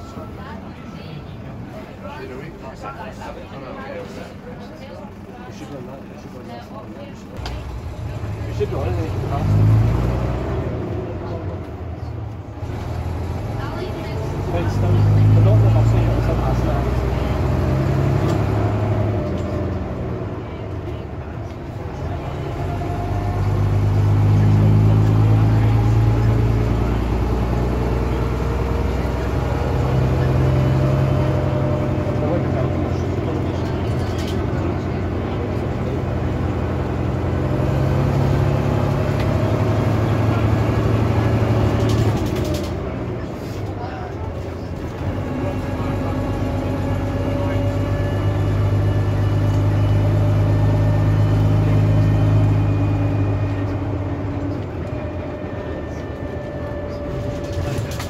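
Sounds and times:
bus diesel engine driving: 0.0s - 58.0s.

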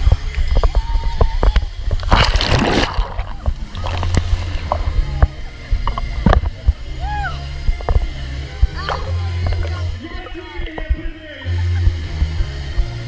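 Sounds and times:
bass of party music: 0.0s - 13.0s
water sloshing: 1.9s - 6.6s
splash into swimming pool: 2.0s - 4.6s.

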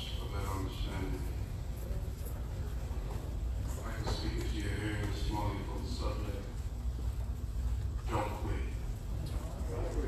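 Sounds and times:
man speaking into a microphone: 0.0s - 1.8s, 3.7s - 6.7s, 8.0s - 10.0s.

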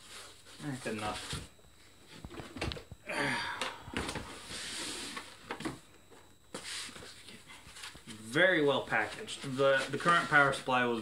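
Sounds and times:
cardboard rustling and sliding: 4.2s - 5.7s, 6.5s - 8.1s, 9.0s - 10.7s.

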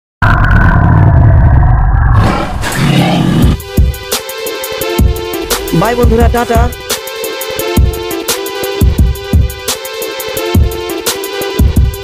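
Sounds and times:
dinosaur roar: 0.2s - 3.7s
music with a beat: 3.6s - 12.0s.

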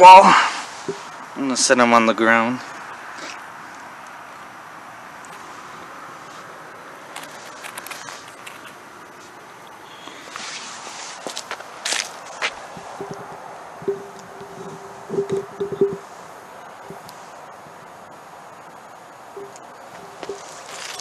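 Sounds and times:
rustling in dry leaf litter: 5.4s - 13.8s, 19.8s - 21.0s
footsteps crunching on leaves: 10.0s - 13.1s, 19.8s - 21.0s
steady low tone: 12.8s - 17.2s, 18.5s - 20.5s.

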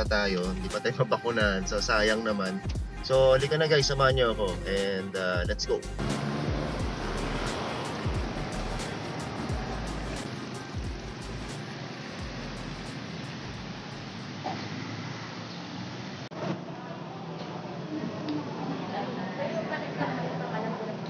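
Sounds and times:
background music: 0.0s - 14.2s
street traffic: 0.0s - 21.0s
motorcycles passing: 5.2s - 21.0s.

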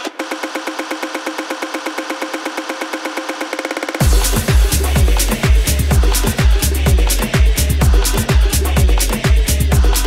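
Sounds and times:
tech house music build-up: 0.0s - 10.0s.

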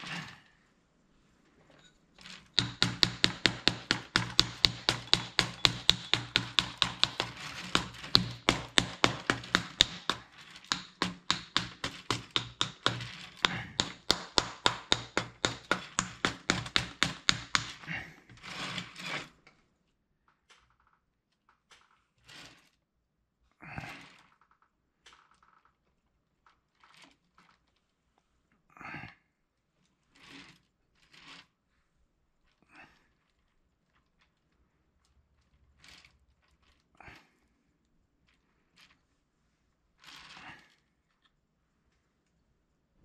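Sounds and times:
wooden tool scraping clay: 2.2s - 19.5s, 30.0s - 31.7s.

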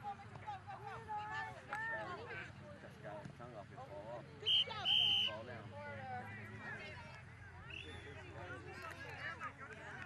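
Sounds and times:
whistle blasts: 4.5s - 5.4s.

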